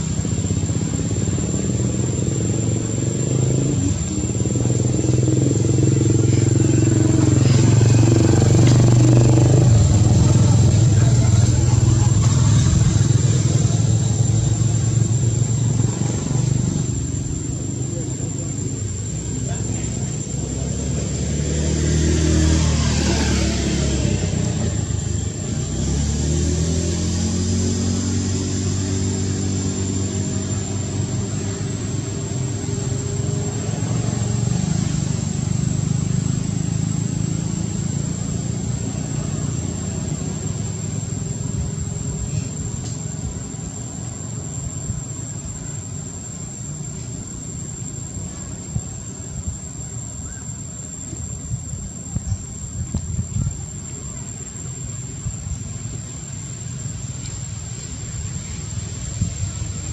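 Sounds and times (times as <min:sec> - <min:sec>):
vehicle passing by: 0:00.0 - 0:45.5
vehicle engines running: 0:00.0 - 0:59.9.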